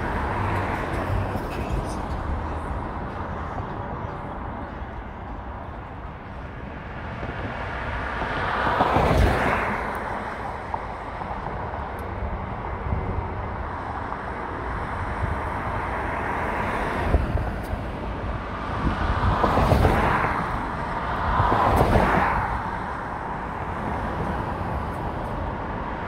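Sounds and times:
road and tyre noise: 0:00.0 - 0:26.0.

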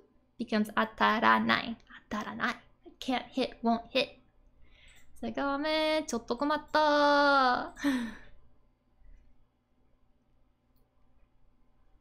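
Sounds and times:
woman laughing breathily: 0:07.8 - 0:08.4.

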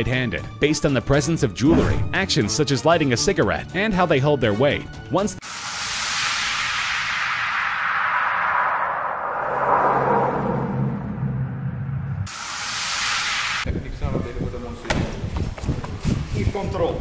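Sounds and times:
short burst of high hiss: 0:05.4 - 0:08.2
whoosh hiss sweeping down: 0:05.4 - 0:11.4, 0:12.2 - 0:14.0
low hum: 0:05.4 - 0:13.7.

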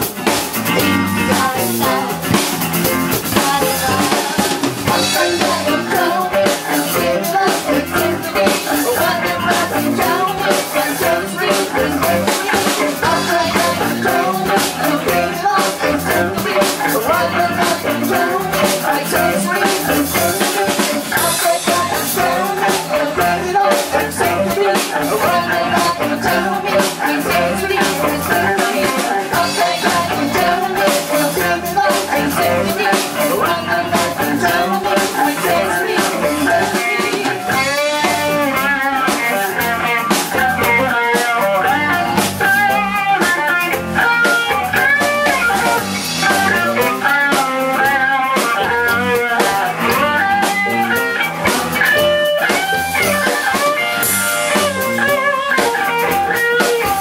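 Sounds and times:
electric guitar solo: 0:00.0 - 0:57.0
live band with drums: 0:00.0 - 0:57.0.

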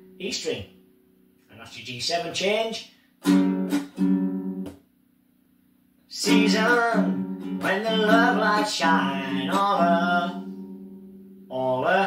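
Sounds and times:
ukulele strumming: 0:03.2 - 0:04.8, 0:06.1 - 0:11.4.

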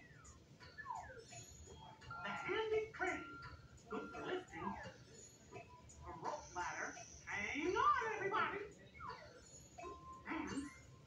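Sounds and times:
squeaky voice-like sound: 0:09.0 - 0:10.9.

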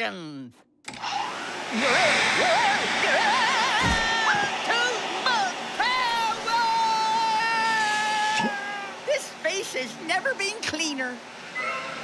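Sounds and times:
cartoon vacuum cleaner running: 0:00.9 - 0:10.0.

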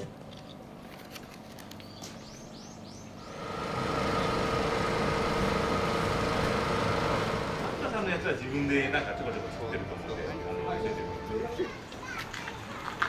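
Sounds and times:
vehicle engine running: 0:03.2 - 0:09.8.

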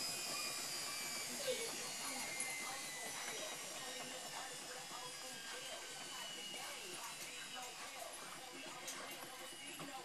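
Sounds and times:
washing machine motor whine: 0:00.0 - 0:10.0.

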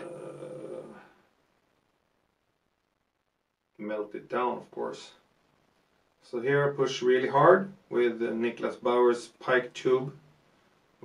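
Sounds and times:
man saying uhh: 0:00.0 - 0:01.2.

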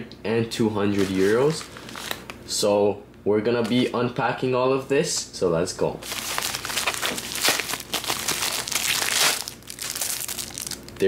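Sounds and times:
plastic mailer tearing and crinkling: 0:00.8 - 0:02.4, 0:06.0 - 0:11.0
plastic wrap rustling: 0:00.8 - 0:02.4, 0:06.0 - 0:11.0.

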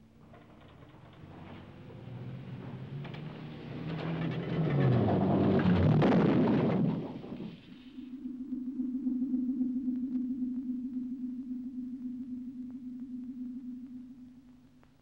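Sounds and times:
car engine accelerating: 0:01.1 - 0:07.3.

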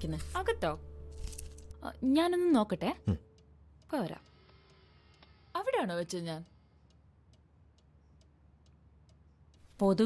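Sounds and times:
clock ticking: 0:02.0 - 0:10.0.

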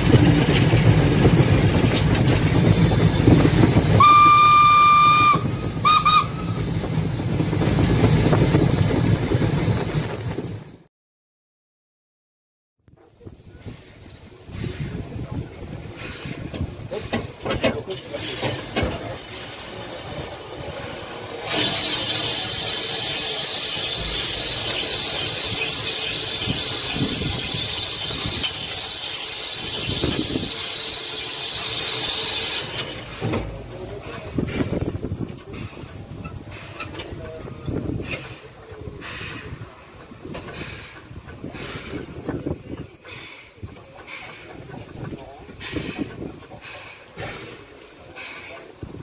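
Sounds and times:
steam hissing: 0:00.0 - 0:10.3, 0:13.2 - 0:49.0.

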